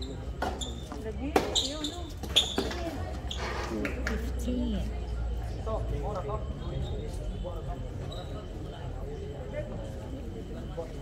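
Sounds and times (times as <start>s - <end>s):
spectators chatting: 0.0s - 11.0s.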